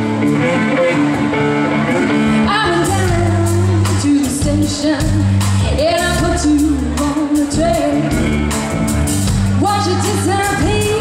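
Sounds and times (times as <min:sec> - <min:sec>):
bass guitar: 0:00.0 - 0:11.0
electric guitar: 0:00.0 - 0:11.0
woman singing: 0:02.4 - 0:08.4, 0:09.6 - 0:11.0
drums keeping a steady beat: 0:02.5 - 0:11.0.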